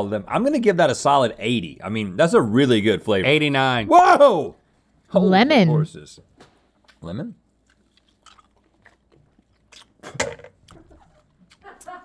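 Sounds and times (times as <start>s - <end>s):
wet chewing clicks and smacks: 6.8s - 11.9s.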